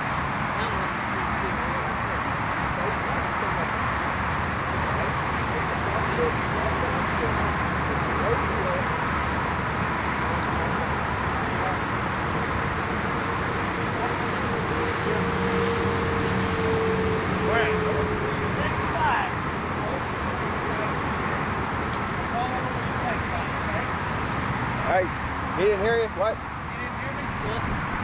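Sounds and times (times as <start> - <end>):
distant road traffic: 0.0 - 28.0.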